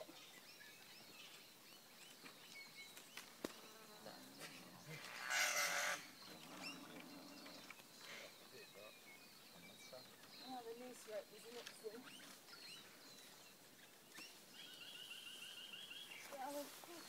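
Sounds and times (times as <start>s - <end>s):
birds calling: 0.0s - 17.0s.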